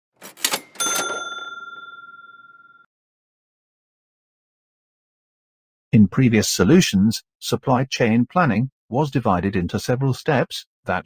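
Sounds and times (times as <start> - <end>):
bell ding: 0.4 - 2.9.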